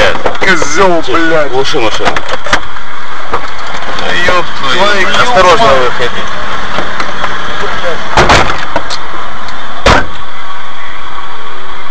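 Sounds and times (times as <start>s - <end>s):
muffled voices: 3.3s - 9.1s
loud thumps inside a car: 8.1s - 8.9s, 9.8s - 10.2s.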